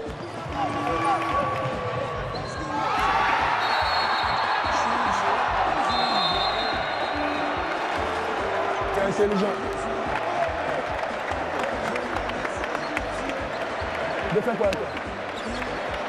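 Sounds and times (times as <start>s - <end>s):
crowd noise: 0.0s - 16.0s
players' voices: 0.0s - 16.0s
shrill whistles: 2.2s - 4.8s, 5.8s - 7.6s.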